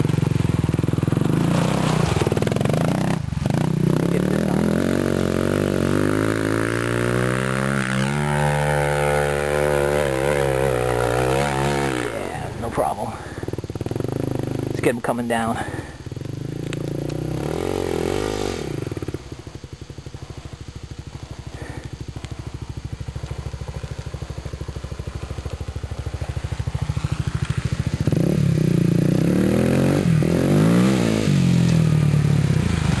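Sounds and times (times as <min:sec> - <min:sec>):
dirt bike engine revving: 0:00.0 - 0:33.0.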